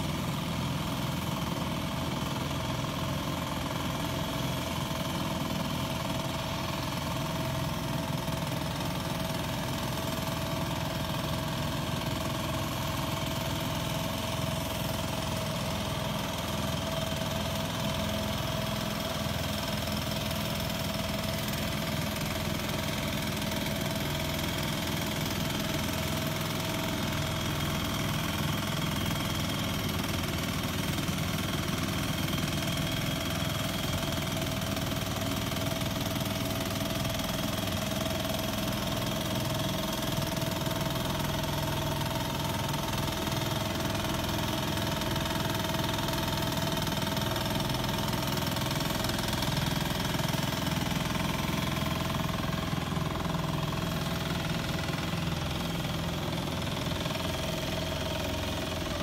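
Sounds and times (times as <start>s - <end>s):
small tractor engine running: 0.0s - 59.0s.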